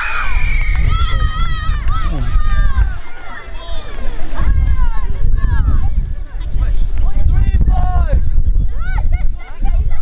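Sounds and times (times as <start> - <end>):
children shouting: 0.0 - 5.2.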